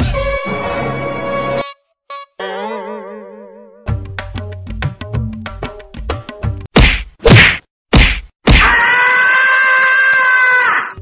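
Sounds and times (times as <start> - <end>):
sharp comedy whacks: 6.7 - 8.8.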